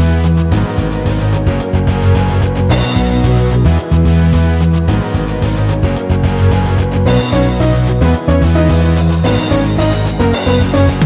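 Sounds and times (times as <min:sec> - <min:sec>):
instrumental gospel backing track: 0:00.0 - 0:11.0.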